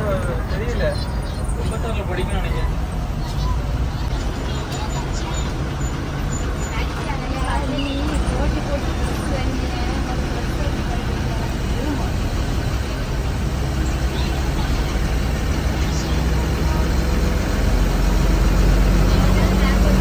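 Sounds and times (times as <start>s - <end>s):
bus engine drone: 0.0s - 20.0s.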